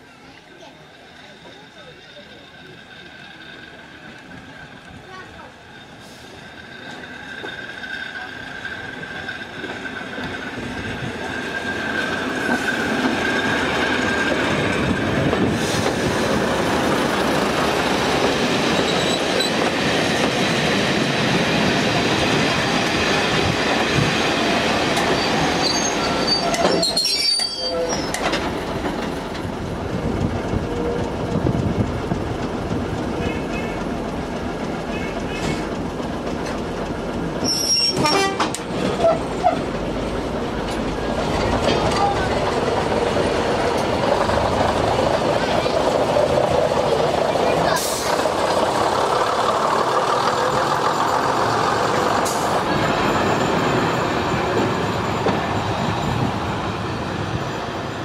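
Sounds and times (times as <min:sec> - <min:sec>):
train wheels rumbling on rails: 0:00.0 - 0:58.0
thin high squeal: 0:25.2 - 0:28.2.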